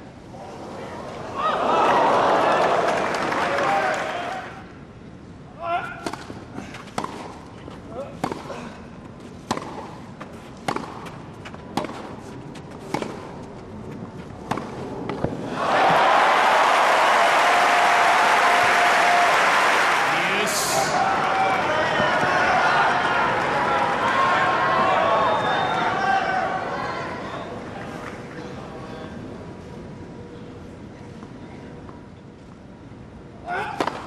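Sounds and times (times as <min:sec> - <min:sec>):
crowd cheering and applause: 0:01.4 - 0:04.6, 0:15.5 - 0:27.1
tennis ball struck and bouncing: 0:09.4 - 0:09.9, 0:10.6 - 0:12.1, 0:14.4 - 0:15.3
hushed crowd: 0:19.5 - 0:28.8.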